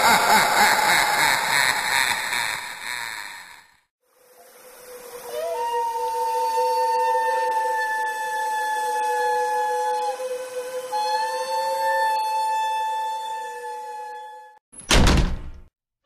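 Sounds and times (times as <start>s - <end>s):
whistle-like drone chord: 4.3s - 14.6s.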